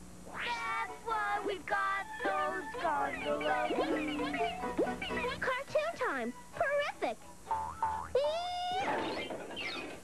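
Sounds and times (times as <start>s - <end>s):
background music: 0.6s - 6.5s.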